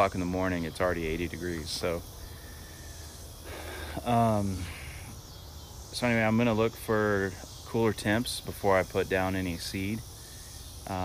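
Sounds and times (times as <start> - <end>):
insects droning: 0.0 - 11.0
faint breath: 2.2 - 5.2.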